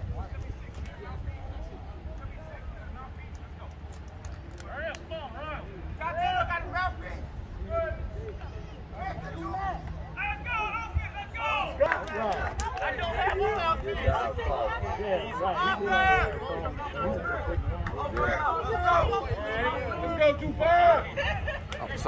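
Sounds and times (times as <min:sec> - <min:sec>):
voices talking and calling out: 0:00.0 - 0:22.0.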